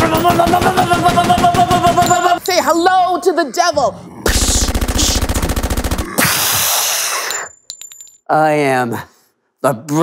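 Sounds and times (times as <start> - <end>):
machine-gun burst: 0.3 - 2.0, 4.4 - 6.5.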